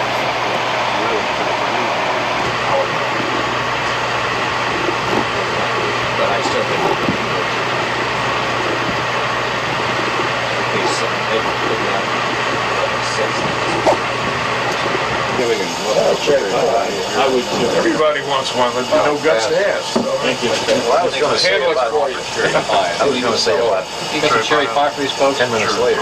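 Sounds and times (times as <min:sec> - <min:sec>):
faint voices talking: 0:00.0 - 0:26.0
ventilation and machinery hum: 0:00.0 - 0:26.0.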